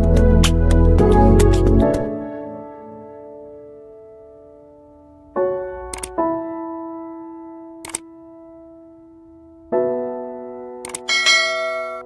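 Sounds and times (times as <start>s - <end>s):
background music sustained notes: 0.0s - 12.0s
notification bell ding: 11.1s - 12.0s.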